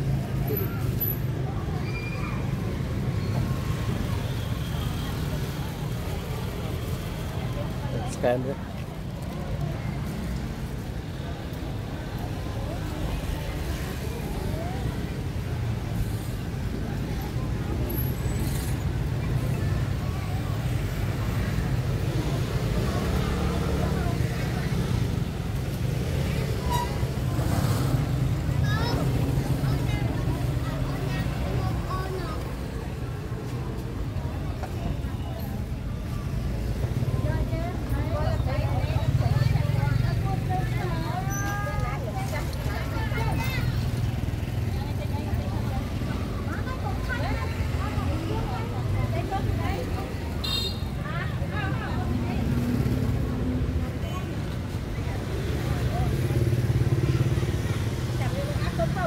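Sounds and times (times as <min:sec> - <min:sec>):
motorbike traffic rumble: 0:00.0 - 0:59.0
people talking: 0:05.3 - 0:59.0.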